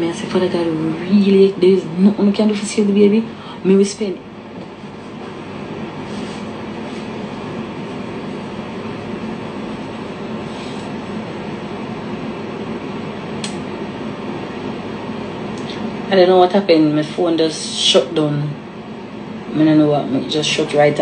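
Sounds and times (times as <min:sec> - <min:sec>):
machine hum and hiss: 0:00.0 - 0:21.0.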